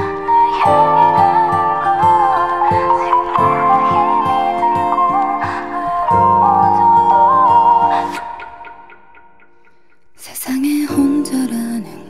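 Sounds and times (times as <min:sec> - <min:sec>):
woman singing a slow ballad: 0:00.0 - 0:09.0, 0:10.2 - 0:12.0
soft instrumental backing: 0:00.0 - 0:12.0.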